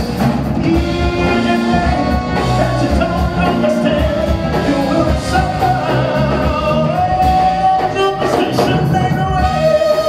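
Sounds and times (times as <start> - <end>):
live band playing: 0.0 - 10.0
man singing: 0.5 - 10.0.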